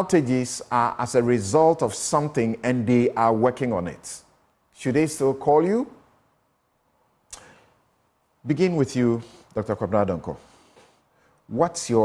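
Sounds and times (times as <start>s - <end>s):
sharp intake of breath: 7.3s - 7.8s, 10.4s - 11.4s.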